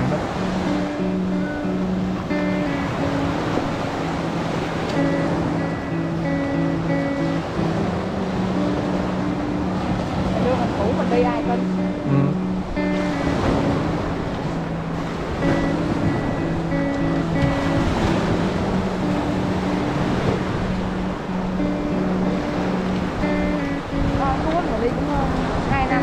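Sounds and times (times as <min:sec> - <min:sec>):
slow music with held notes: 0:00.0 - 0:26.0
small waves breaking on a beach: 0:00.0 - 0:26.0.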